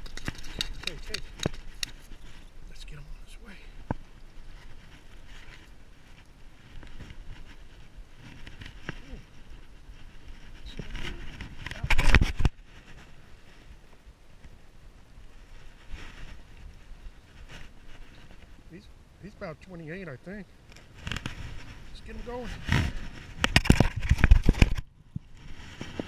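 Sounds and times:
clothing and hands rustling: 15.4s - 18.6s.

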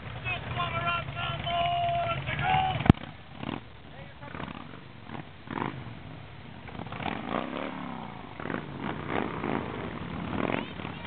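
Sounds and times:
motorcycles rumbling past: 0.0s - 11.0s
people's voices and shouts: 0.2s - 3.0s.

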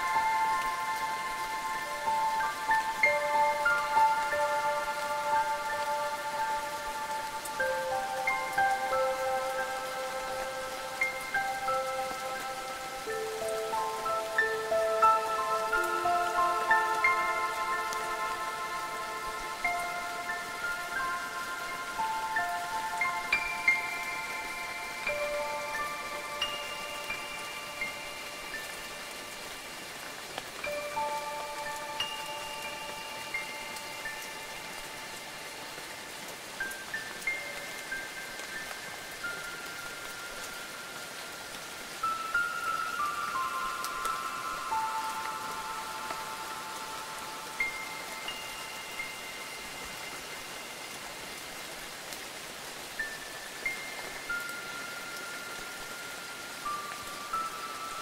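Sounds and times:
steady rain: 0.0s - 58.0s
wind chimes ringing: 0.0s - 58.0s.

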